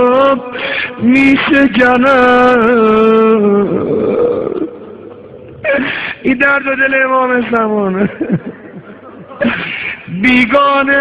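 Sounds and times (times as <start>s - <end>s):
mourning chant: 0.0s - 7.6s.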